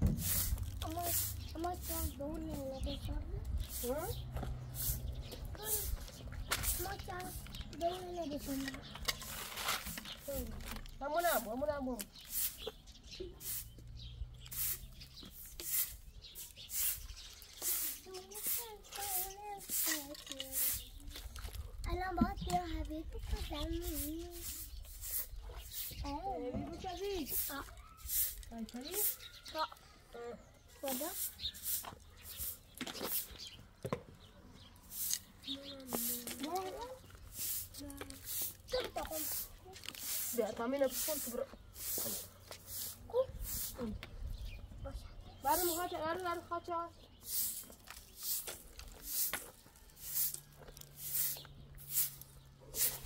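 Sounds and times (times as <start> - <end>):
broom swishing on concrete: 0.0 - 21.3, 23.1 - 29.7, 30.7 - 33.6, 34.8 - 44.1, 45.4 - 53.0.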